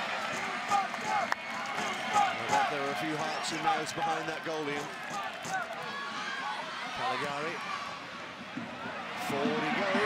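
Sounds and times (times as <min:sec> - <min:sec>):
stadium crowd din: 0:00.0 - 0:10.0.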